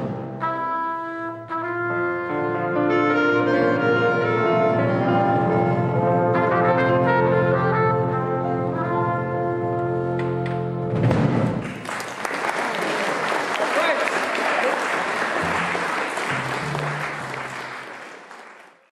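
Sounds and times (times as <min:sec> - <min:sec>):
audience applause: 0:11.6 - 0:18.9.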